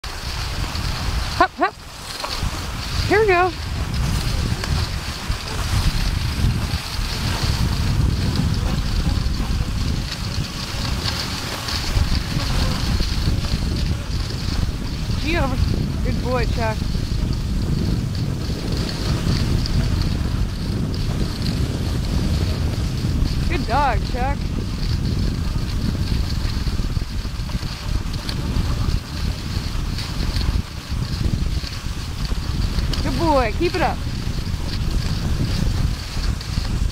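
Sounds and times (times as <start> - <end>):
skis gliding across snow: 0.0 - 36.9
wind buffeting microphone: 0.0 - 36.9.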